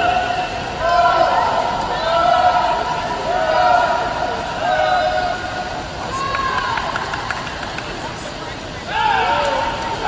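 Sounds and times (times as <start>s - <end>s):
spectators yelling and cheering: 0.0s - 8.0s, 8.8s - 10.0s.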